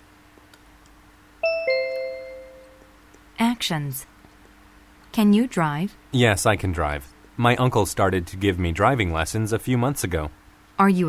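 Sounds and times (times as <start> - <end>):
two-note descending chime: 1.4 - 2.9.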